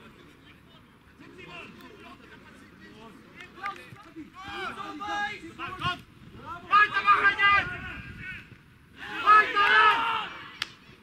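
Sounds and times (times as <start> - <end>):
men shouting and calling out: 0.3 - 10.6.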